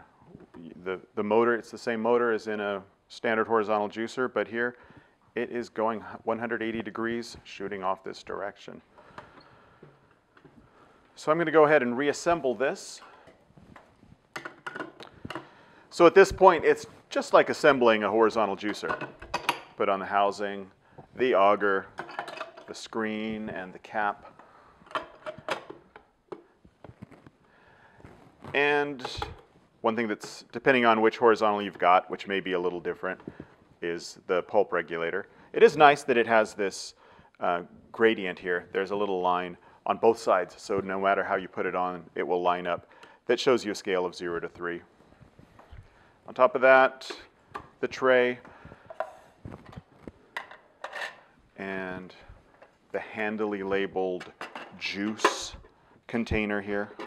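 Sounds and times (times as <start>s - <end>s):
plastic parts clicking and knocking: 13.2s - 15.6s, 21.9s - 22.8s, 24.3s - 27.3s, 48.8s - 51.2s.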